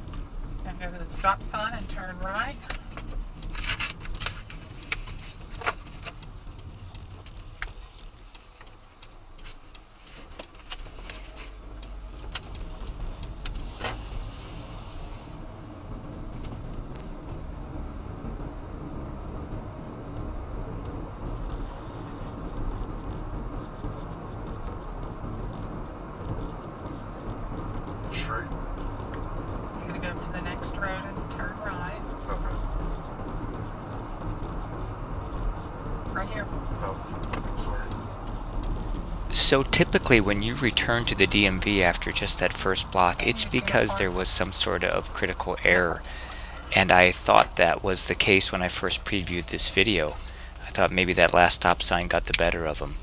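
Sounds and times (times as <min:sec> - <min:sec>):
car engine and tyre road noise: 0:00.0 - 0:53.0
clicks inside car: 0:02.3 - 0:14.0, 0:22.3 - 0:43.8.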